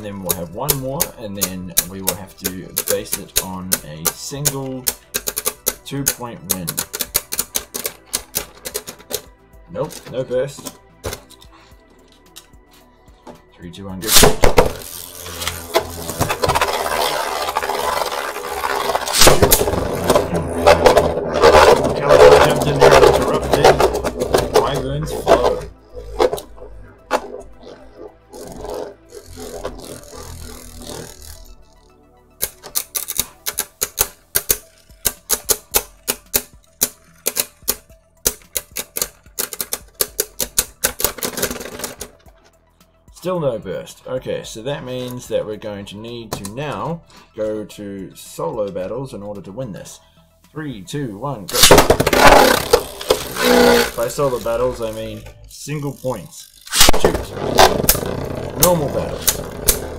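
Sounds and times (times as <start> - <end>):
spinning tops clicking together: 0.0 - 9.3, 14.1 - 31.5, 32.4 - 42.2, 51.5 - 55.2, 55.8 - 59.9
spinning tops whirring and grinding: 0.0 - 9.3, 14.0 - 42.3, 51.5 - 59.9.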